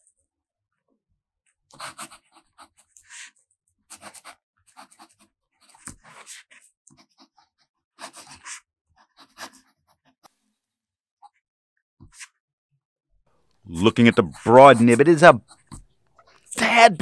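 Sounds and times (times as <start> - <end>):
pen nib scratching paper: 1.7 - 9.9.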